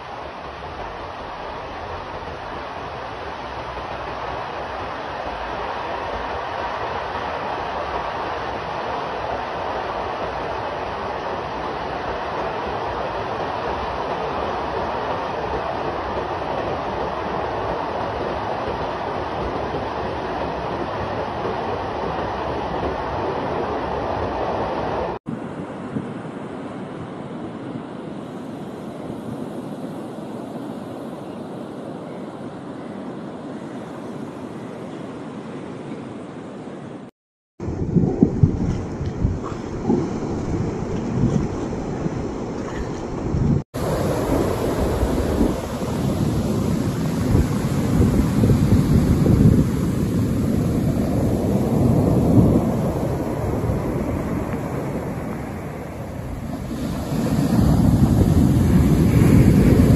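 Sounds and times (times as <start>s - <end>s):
quieter steady water rushing: 0.0s - 59.9s
water gushing from dam outlet: 43.8s - 59.9s.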